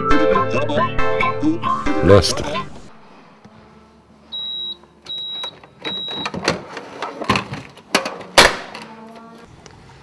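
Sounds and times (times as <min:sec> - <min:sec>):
short electronic beeps: 0:04.3 - 0:06.3.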